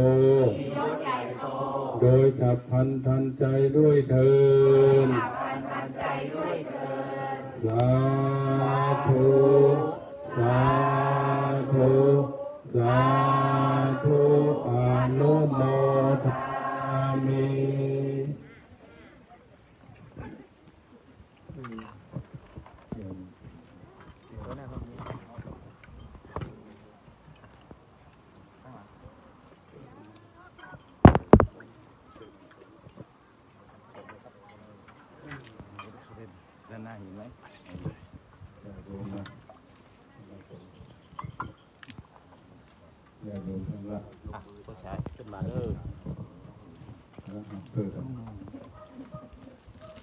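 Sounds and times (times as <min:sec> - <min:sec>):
voices chanting long syllables: 0:00.0 - 0:19.3
water splashes: 0:04.5 - 0:50.0.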